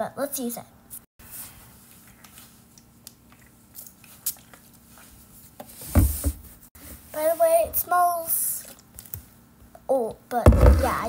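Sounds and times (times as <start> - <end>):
bottle thumping on table: 10.5 - 11.0.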